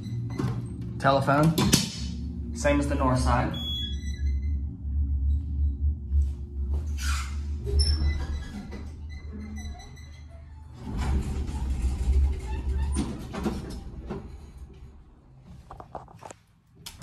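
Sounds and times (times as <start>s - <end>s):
elevator doors sliding open: 0.0s - 15.4s.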